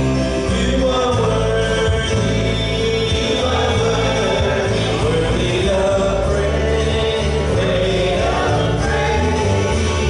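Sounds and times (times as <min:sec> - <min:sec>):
group singing gospel song: 0:00.3 - 0:10.0.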